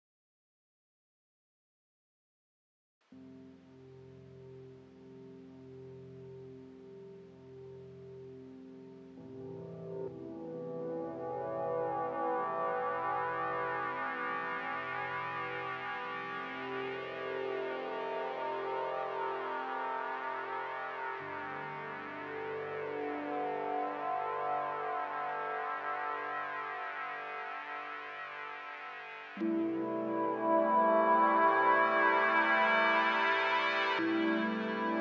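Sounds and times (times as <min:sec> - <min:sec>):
synthesizer ambient pad chords: 0:03.1 - 0:35.0.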